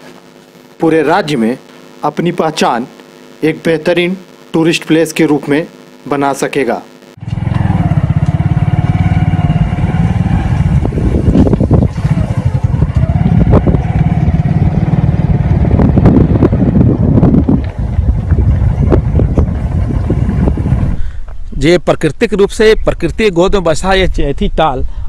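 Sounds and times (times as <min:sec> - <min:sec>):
vehicle engine running: 0:07.2 - 0:21.0.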